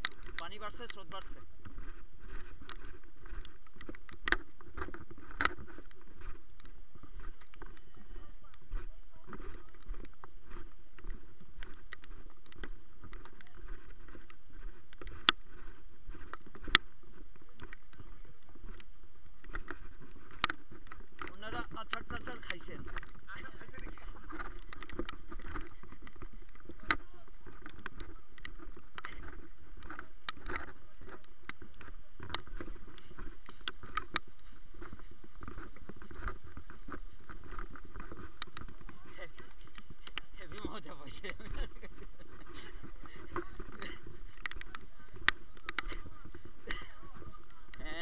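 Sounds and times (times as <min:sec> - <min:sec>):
footsteps on muddy trail: 0:00.0 - 0:48.0.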